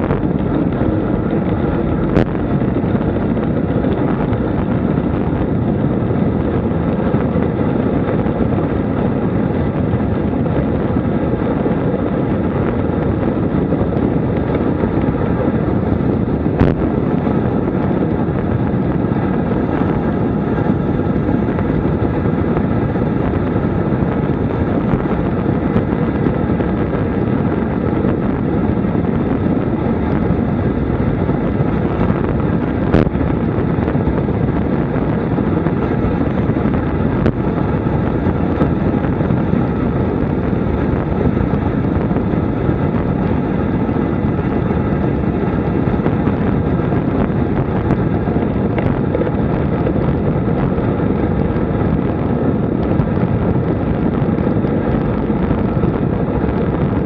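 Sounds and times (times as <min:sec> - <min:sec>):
bike tyre noise: 0:00.0 - 0:57.0
wind rushing over microphone: 0:00.0 - 0:57.0.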